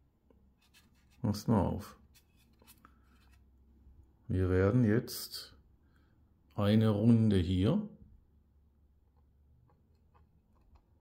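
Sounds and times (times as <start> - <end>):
plastic part scratching and clicking: 0.6 - 1.2.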